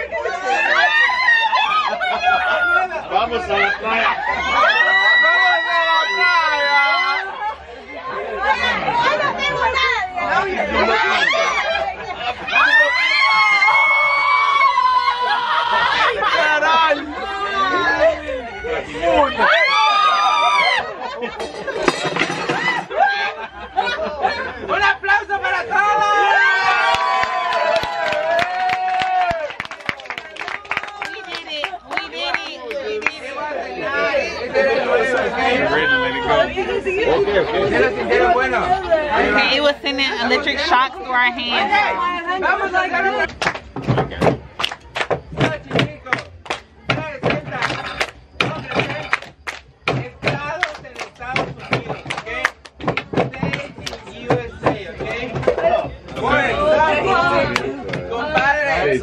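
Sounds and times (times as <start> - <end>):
people squealing and yelping: 0.0 - 29.6
people laughing and shouting: 0.0 - 59.0.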